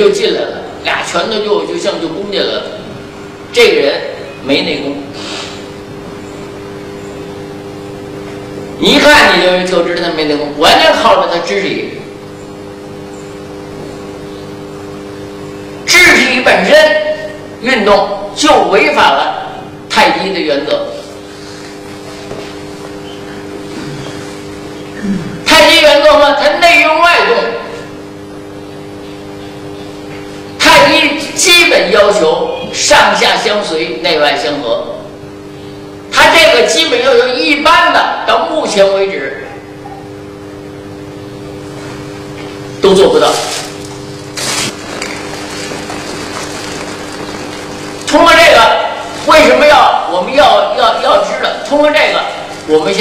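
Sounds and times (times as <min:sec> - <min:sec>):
steady background hum: 0:00.0 - 0:53.0
even hiss: 0:05.1 - 0:05.8.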